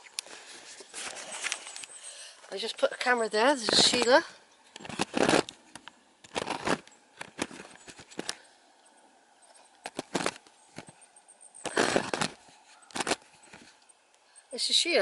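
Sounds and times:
camera scraping and knocking on stone: 2.6 - 8.4, 9.8 - 11.0, 11.6 - 13.8.

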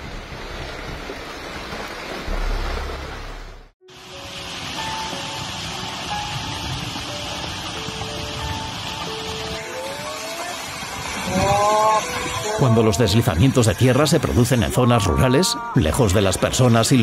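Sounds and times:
music of sustained notes: 3.8 - 16.9.

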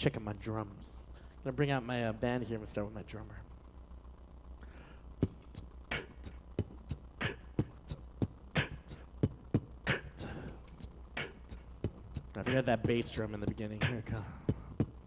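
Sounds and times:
man beatboxing: 5.2 - 15.0.

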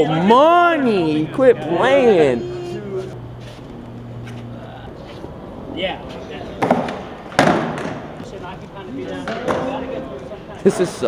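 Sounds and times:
men's voices: 0.0 - 11.0
hard knocks on concrete: 6.6 - 8.4.

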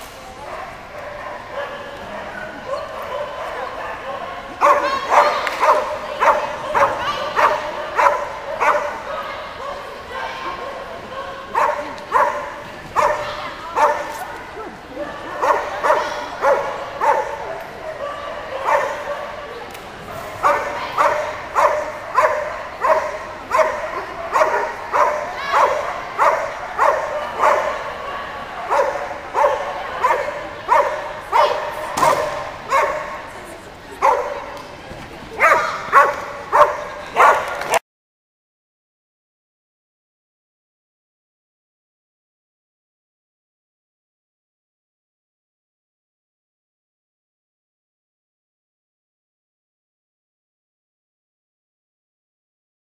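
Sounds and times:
dog barking high-pitched: 0.5 - 10.8, 11.5 - 14.2, 15.4 - 19.3, 20.4 - 27.9, 28.7 - 33.3, 34.0 - 34.4, 35.4 - 37.6.

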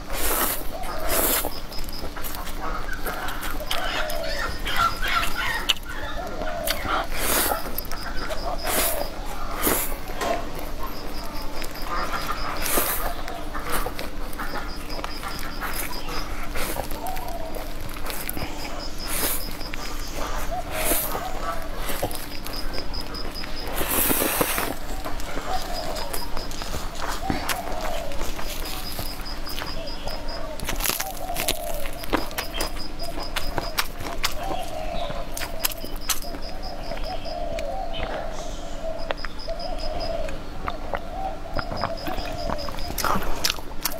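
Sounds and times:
noodles being slurped and chewed: 0.0 - 3.8, 6.6 - 29.3.

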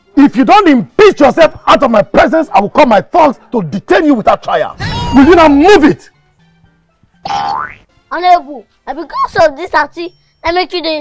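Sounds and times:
cartoon boing sound effect: 7.2 - 7.8.

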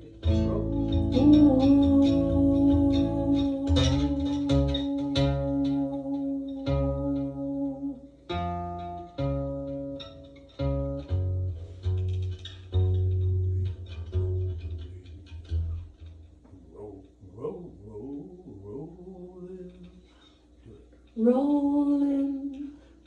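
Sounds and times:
guitar notes: 0.0 - 19.2.

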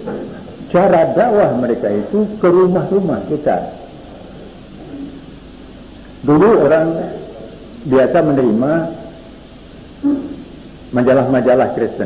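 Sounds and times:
recording hiss and hum: 0.0 - 12.0.

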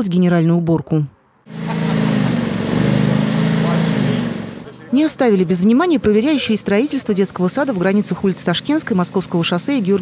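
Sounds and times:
small engine running: 1.5 - 10.0.

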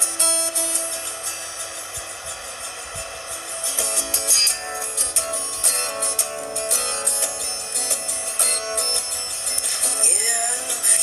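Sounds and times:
acoustic guitar: 0.0 - 11.0
steady hiss: 0.0 - 11.0.

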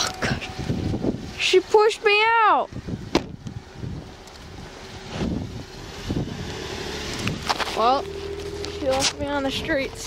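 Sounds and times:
car running nearby: 0.0 - 10.0
wind buffeting microphone: 0.0 - 10.0
car door slamming: 3.1 - 3.4.

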